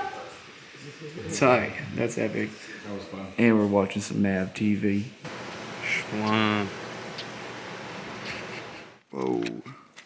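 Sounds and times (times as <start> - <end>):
steady background hiss: 0.0 - 9.8.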